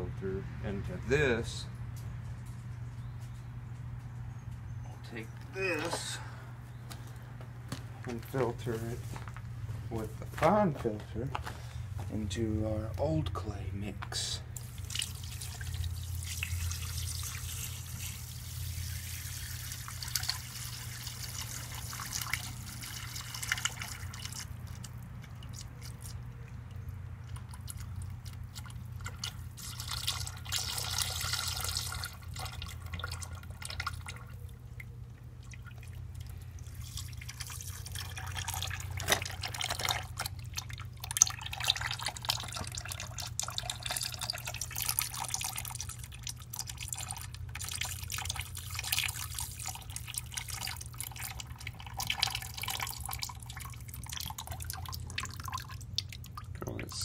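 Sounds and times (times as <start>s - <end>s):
clay slurry trickling and dripping: 13.9s - 57.0s
small clicks and splashes: 14.0s - 57.0s.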